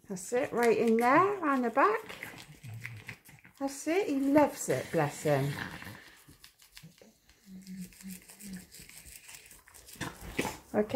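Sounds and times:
toothbrush scrubbing teeth: 0.2s - 10.9s.

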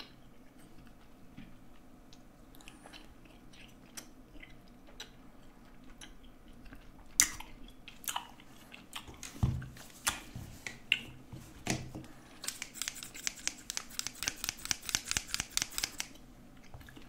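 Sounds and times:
scissors snipping: 12.4s - 16.2s.

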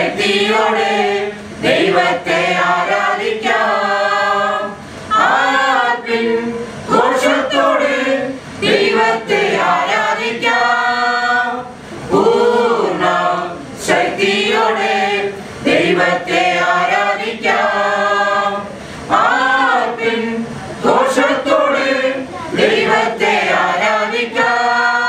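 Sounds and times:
women singing together: 0.0s - 25.0s.

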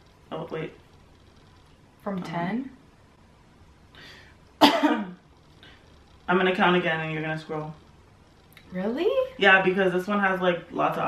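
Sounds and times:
woman coughing: 4.6s - 5.2s.

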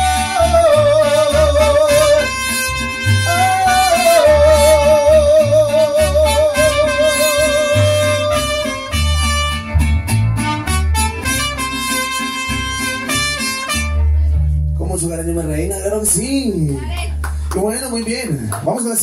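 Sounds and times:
person singing with vibrato: 0.0s - 2.6s, 3.2s - 9.0s
deep bass notes: 0.0s - 18.8s
mariachi band playing: 0.0s - 19.0s.

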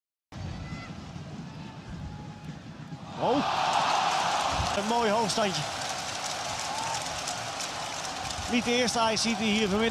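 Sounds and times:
stadium crowd noise: 0.3s - 9.9s.

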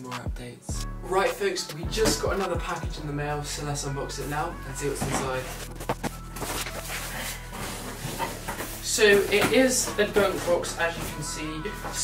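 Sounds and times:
cardboard rustling and scraping: 4.2s - 12.0s.

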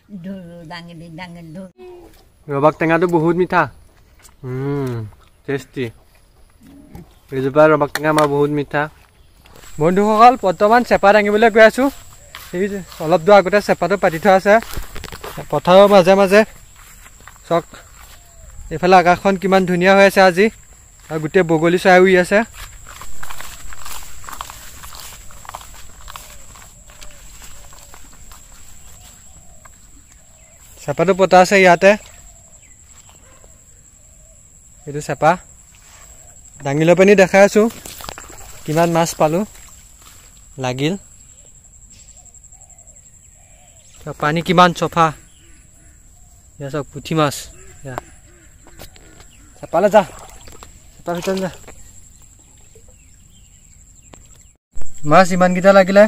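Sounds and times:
leaves brushing: 8.4s - 19.4s, 22.4s - 31.3s, 37.4s - 40.7s
footsteps on muddy path: 8.8s - 19.4s, 20.4s - 31.1s, 37.5s - 40.6s
faint bird chirps: 22.8s - 37.0s, 40.6s - 50.6s.

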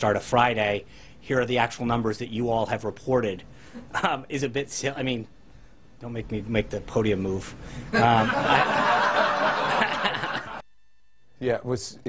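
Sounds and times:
people laughing together: 7.9s - 10.6s.

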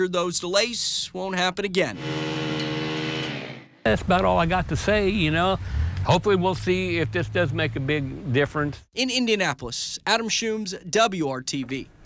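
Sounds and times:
construction equipment engine running: 1.9s - 5.2s.

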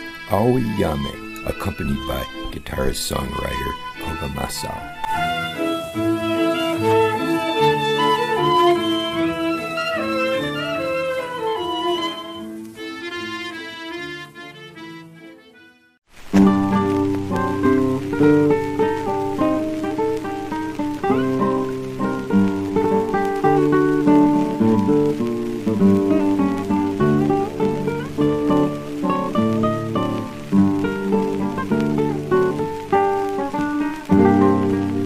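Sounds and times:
plucked acoustic guitar melody: 0.0s - 15.4s, 16.3s - 35.0s.

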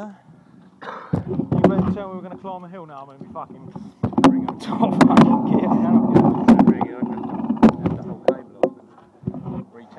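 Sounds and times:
bike rattling over bumps: 1.2s - 9.6s.

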